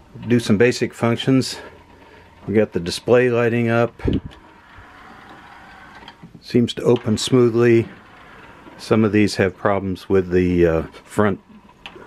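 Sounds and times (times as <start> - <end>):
cd tray motor whirring: 3.2 - 6.4.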